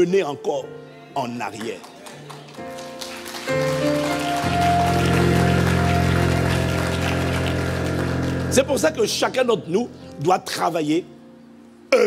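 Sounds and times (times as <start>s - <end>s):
keyboard playing soft chords: 0.0s - 12.0s.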